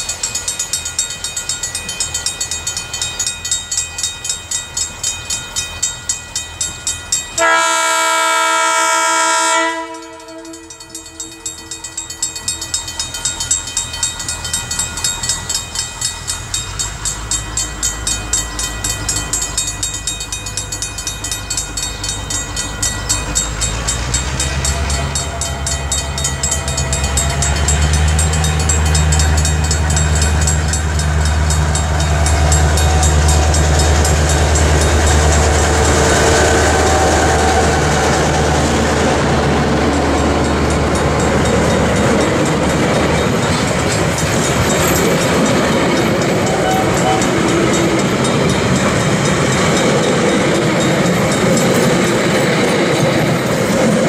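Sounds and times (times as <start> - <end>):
level crossing bells ringing: 0.0 - 54.0
locomotive horn blast: 7.4 - 10.8, 46.4 - 47.5
diesel engine rumble: 20.6 - 51.5.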